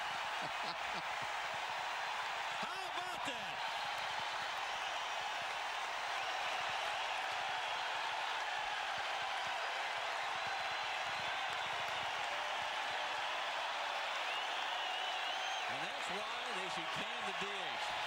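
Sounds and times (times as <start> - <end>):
crowd cheering and clapping: 0.0 - 18.0.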